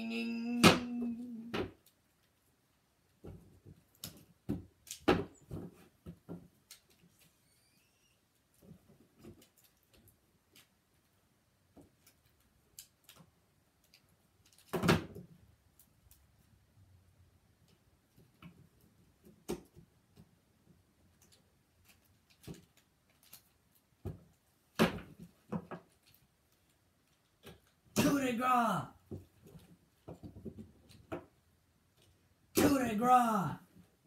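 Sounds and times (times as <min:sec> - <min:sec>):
man droning ng sound: 0:00.0 - 0:01.5, 0:32.6 - 0:33.6.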